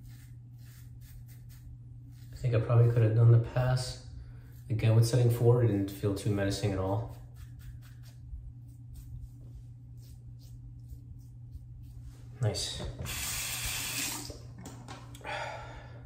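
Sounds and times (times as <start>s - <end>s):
razor scraping stubble: 0.0s - 3.2s, 6.6s - 12.0s
bathroom tap running: 12.9s - 15.0s.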